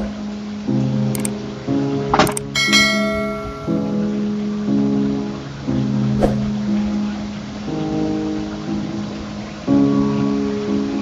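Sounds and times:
acoustic guitar music: 0.7 - 10.6
bright bell ding: 2.6 - 4.1
short swish: 6.2 - 6.5.

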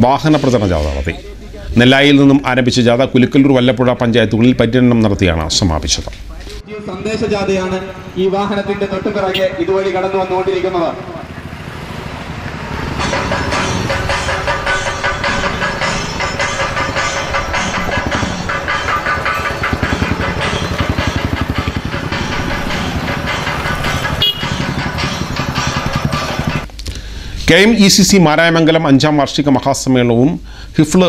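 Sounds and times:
voices: 0.0 - 22.2
motorcycles and scooters running: 6.7 - 26.8.

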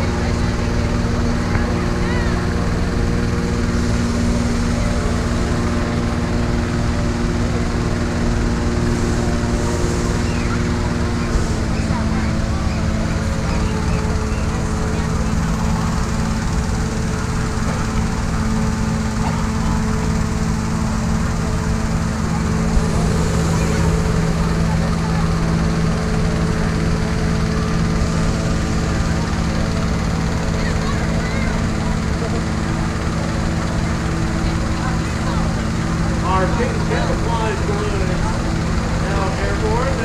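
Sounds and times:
engine-driven fans droning: 0.0 - 40.0.

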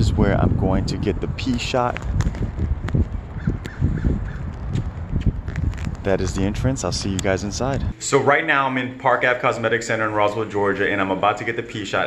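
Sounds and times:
wind rumble on microphone: 0.0 - 8.0.

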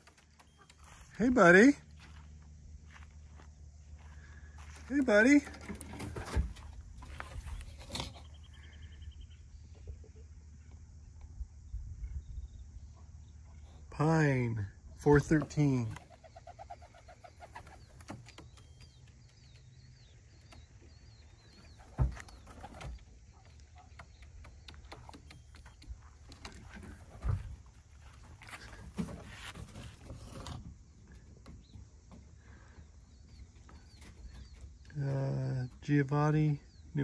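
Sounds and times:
pigeons cooing: 16.0 - 18.2.

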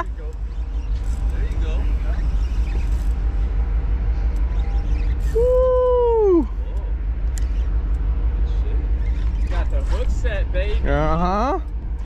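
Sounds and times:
boat engine idling: 0.0 - 12.0.

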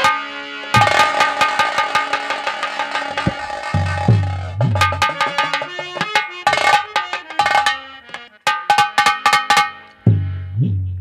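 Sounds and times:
sharp ringing drum strokes: 0.0 - 9.9.

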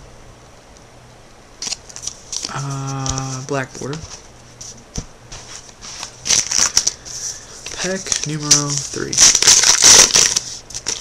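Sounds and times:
trading cards rustling: 1.6 - 11.0.

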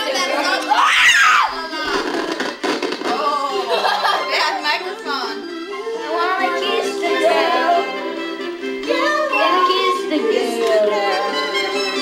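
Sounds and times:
noisy commotion: 0.0 - 5.3
faint karaoke backing track: 0.0 - 12.0.

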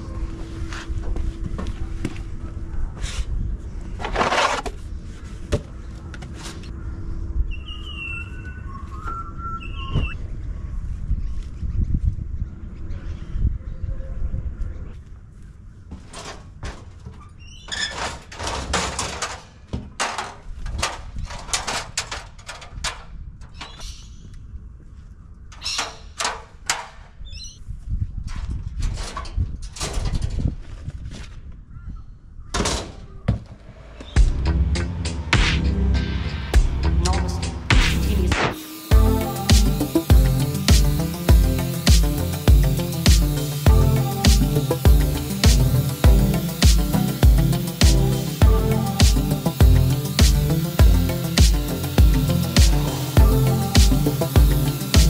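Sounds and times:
bird chirps: 6.8 - 10.2.

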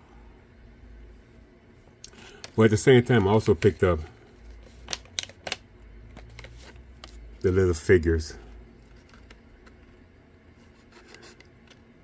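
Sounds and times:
low steady hum: 0.0 - 12.0
plastic blister pack clicks: 4.8 - 5.7.

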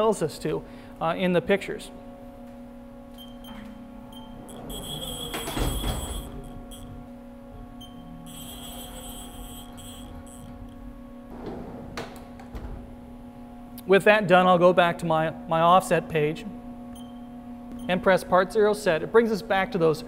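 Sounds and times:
steady machine hum: 0.0 - 20.0
high servo whine: 3.4 - 11.0.

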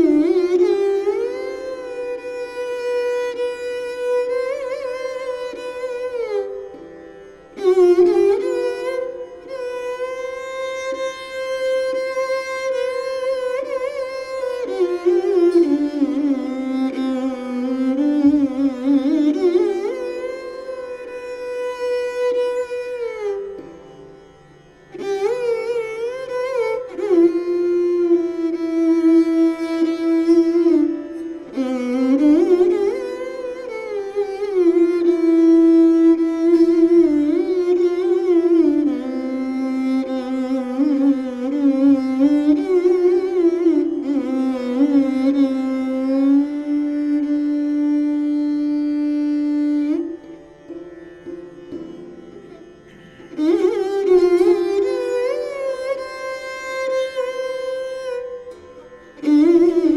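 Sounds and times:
bowed string instrument gliding notes: 0.0 - 59.9.

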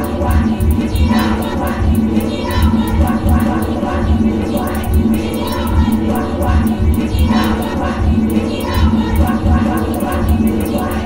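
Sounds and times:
deep pulsing bass: 0.0 - 11.0
massed crowd-like voices: 0.0 - 11.0.

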